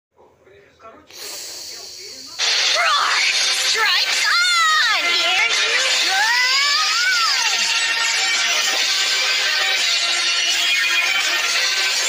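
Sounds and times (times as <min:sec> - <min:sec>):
sudden hiss: 0:01.1 - 0:02.7.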